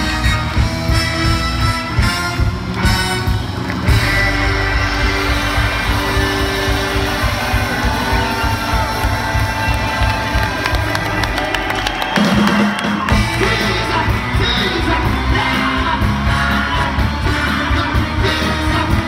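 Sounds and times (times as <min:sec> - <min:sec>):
bass: 0:00.0 - 0:19.0
drums: 0:00.0 - 0:19.0
electric guitar: 0:00.0 - 0:19.0
live soul band playing: 0:00.0 - 0:19.0.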